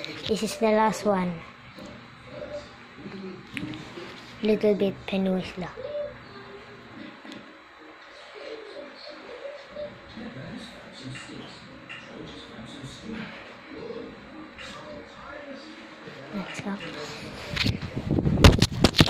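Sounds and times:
faint voices talking: 0.0 - 18.2.

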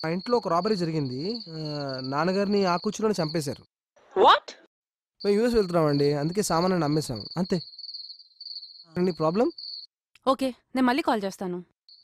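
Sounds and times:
crickets trilling: 0.0 - 3.6, 5.2 - 9.9
man talking on phone: 0.0 - 3.6, 5.2 - 7.6, 9.0 - 9.6.

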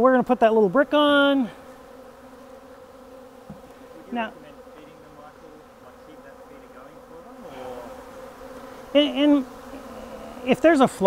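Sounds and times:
honey bees buzzing: 0.0 - 11.0.

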